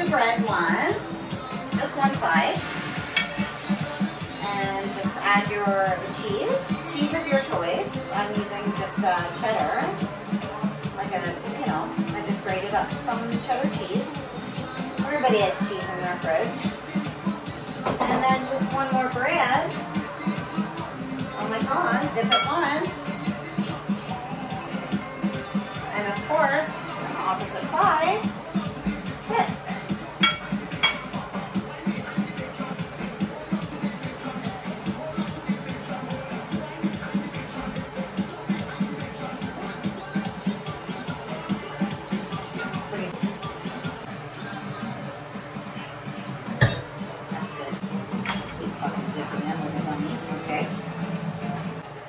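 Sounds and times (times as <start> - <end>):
background music with steady beat: 0.0 - 52.0
utensil clinking against a dish: 3.1 - 3.8, 22.2 - 22.6, 30.2 - 31.2, 48.1 - 48.8.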